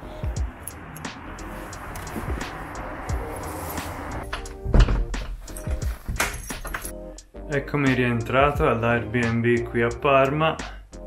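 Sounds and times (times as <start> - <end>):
background music: 0.0 - 11.0
door shutting heavily: 2.2 - 6.9.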